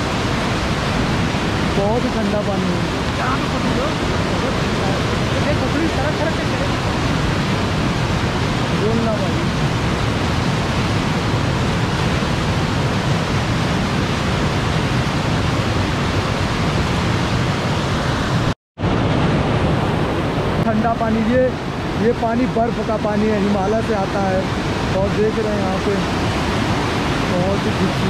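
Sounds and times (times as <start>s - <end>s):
river rushing over boulders: 0.0s - 28.0s.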